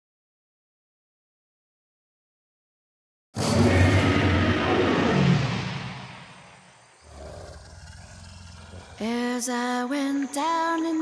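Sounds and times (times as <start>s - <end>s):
loud monster roar: 3.4s - 9.1s.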